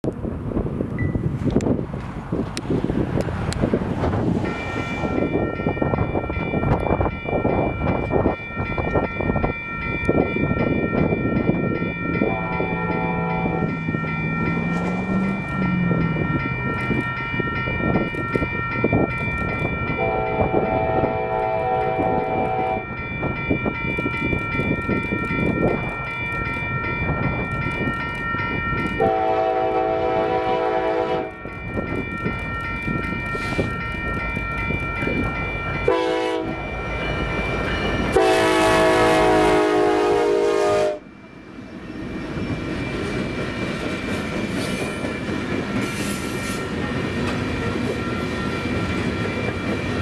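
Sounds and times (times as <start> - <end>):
train rumble: 0.0 - 50.0
steady high ringing: 4.4 - 50.0
train horn blasts: 12.2 - 13.7, 20.0 - 22.9, 29.0 - 31.4, 35.9 - 36.6, 38.1 - 41.1.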